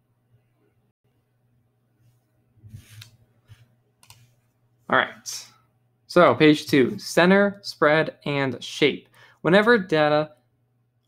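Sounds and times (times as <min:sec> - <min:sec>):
man speaking: 0:04.9 - 0:10.4.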